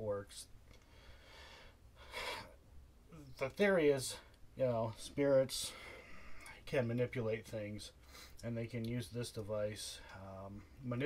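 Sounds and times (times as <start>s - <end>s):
man breathing: 0.7s - 2.6s, 5.6s - 6.6s, 8.0s - 8.4s.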